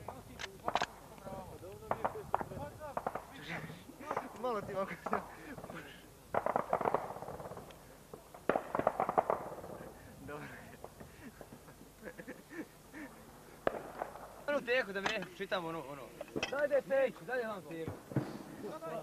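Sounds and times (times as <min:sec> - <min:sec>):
men's voices: 0:00.0 - 0:08.4, 0:09.5 - 0:13.8, 0:14.4 - 0:19.0
automatic gunfire bursts: 0:05.1 - 0:07.7, 0:08.4 - 0:10.0
single gunshots: 0:06.3 - 0:07.7, 0:08.5 - 0:09.8, 0:13.6 - 0:14.3.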